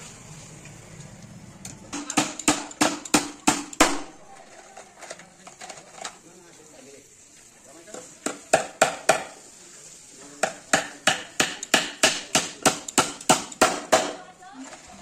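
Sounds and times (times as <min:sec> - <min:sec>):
hammer nailing plywood: 0:02.0 - 0:04.1, 0:08.2 - 0:09.3, 0:10.4 - 0:14.2.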